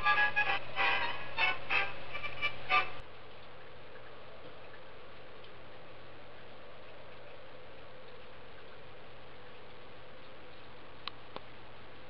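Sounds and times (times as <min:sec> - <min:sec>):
music: 0:00.0 - 0:03.0
faint hum: 0:00.0 - 0:12.0
steady recording hiss: 0:00.0 - 0:12.0
click: 0:11.0 - 0:11.5.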